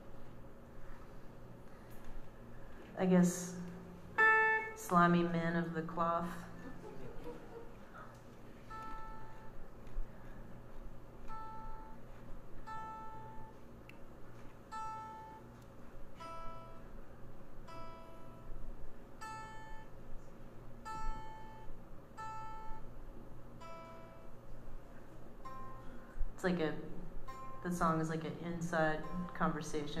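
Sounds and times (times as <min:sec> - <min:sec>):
guitar plucked single notes: 0:03.4 - 0:06.5, 0:08.6 - 0:09.6, 0:11.2 - 0:12.0, 0:12.6 - 0:13.6, 0:19.2 - 0:20.0, 0:20.8 - 0:22.9.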